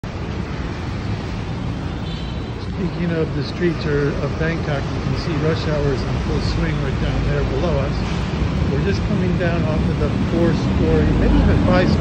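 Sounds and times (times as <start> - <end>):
heavy road traffic rumble: 0.0 - 12.0.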